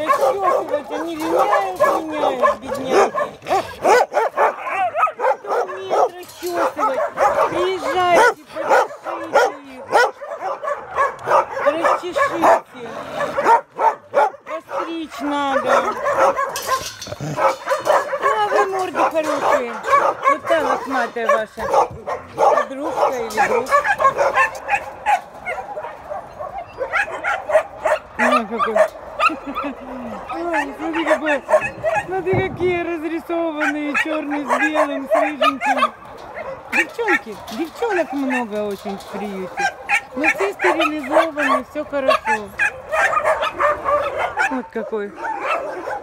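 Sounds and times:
dogs whining and barking: 0:00.0 - 0:46.0.

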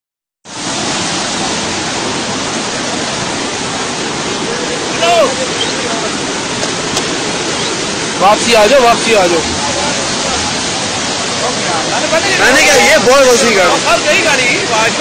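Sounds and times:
floodwater rushing: 0:00.5 - 0:15.0.

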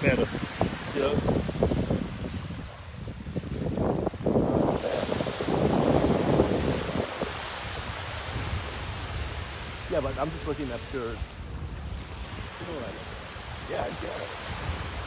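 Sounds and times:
small waves breaking on sand: 0:00.0 - 0:15.0
wind buffeting microphone: 0:00.0 - 0:15.0.

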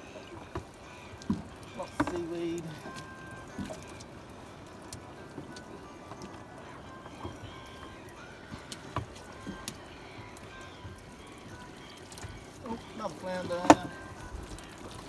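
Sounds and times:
water dripping off net: 0:00.0 - 0:06.3, 0:08.1 - 0:15.0.

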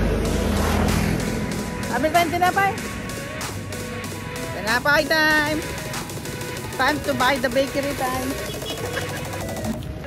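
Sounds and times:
vehicle engine rumble passing by: 0:00.0 - 0:02.0.

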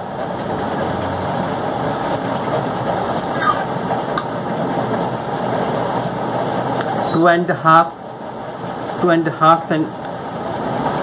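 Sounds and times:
loud steady machine noise: 0:00.0 - 0:11.0.

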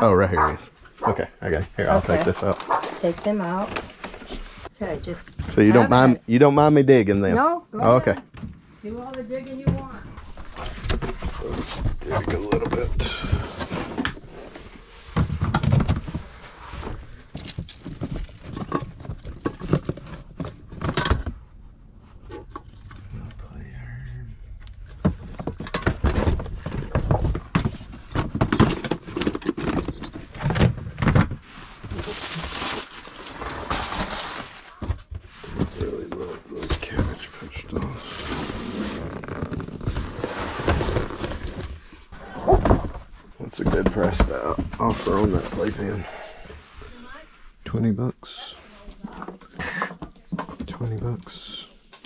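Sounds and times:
boxes and bins rustling: 0:00.4 - 0:06.1, 0:09.4 - 0:23.4, 0:24.8 - 0:47.2.

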